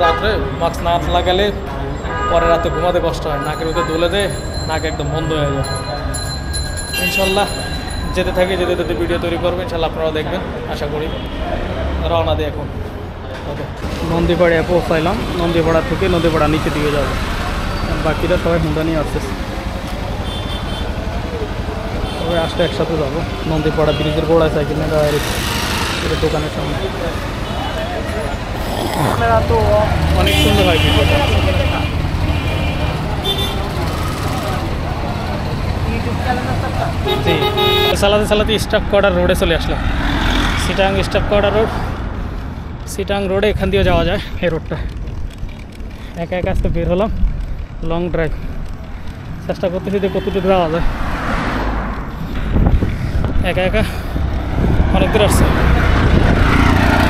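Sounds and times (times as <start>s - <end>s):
car and rickshaw engines running: 0.0s - 57.0s
road traffic noise: 0.0s - 57.0s
voices of passers-by: 0.0s - 57.0s
wind buffeting microphone: 52.3s - 57.0s.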